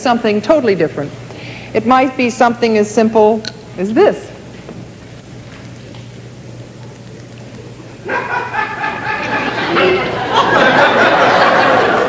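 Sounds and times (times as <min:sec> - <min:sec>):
low hall hum: 0:00.0 - 0:12.0
audience laughing: 0:08.0 - 0:12.0.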